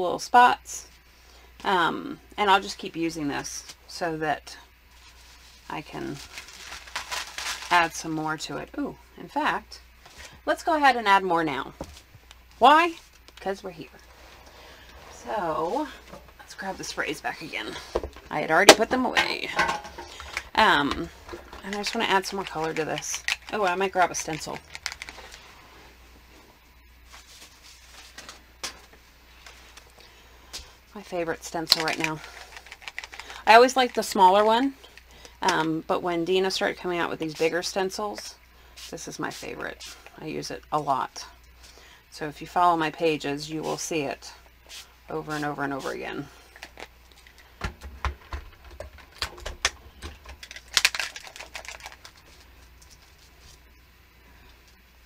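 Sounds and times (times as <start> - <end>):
low steady hum: 0.0 - 55.0.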